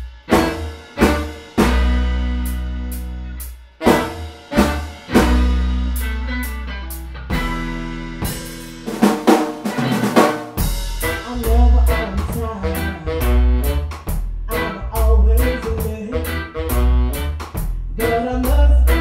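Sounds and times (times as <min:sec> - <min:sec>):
deep bass: 0:00.0 - 0:09.3, 0:10.6 - 0:19.0
electric guitar: 0:00.0 - 0:19.0
snare drum hits: 0:00.3 - 0:02.0, 0:03.8 - 0:05.6.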